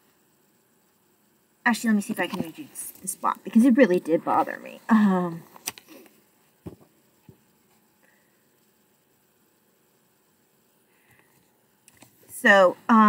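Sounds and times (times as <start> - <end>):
book pages clicking: 5.5 - 5.9.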